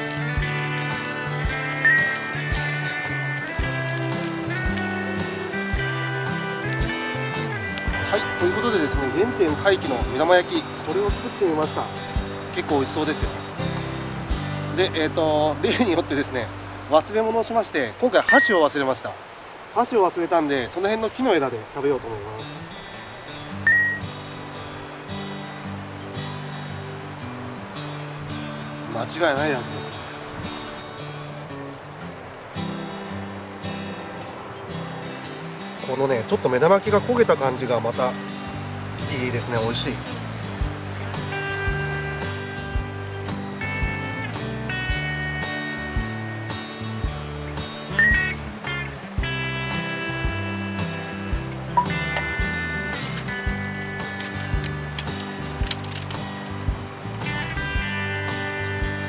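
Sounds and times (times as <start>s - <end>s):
background music of low notes: 0.0s - 18.7s, 21.8s - 59.0s
river rushing: 0.0s - 59.0s
bright chime sound effect: 1.9s - 2.2s, 18.3s - 18.6s, 23.7s - 24.1s, 48.0s - 48.4s.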